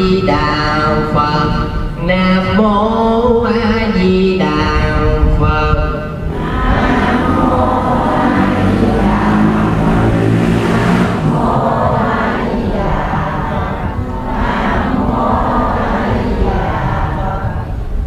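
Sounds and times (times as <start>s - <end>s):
congregation chanting prayers: 0.0s - 18.0s.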